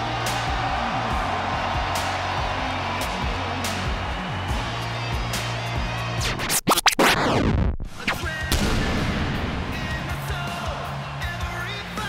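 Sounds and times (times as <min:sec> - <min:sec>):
booming hits with rumble: 0:08.5 - 0:10.2.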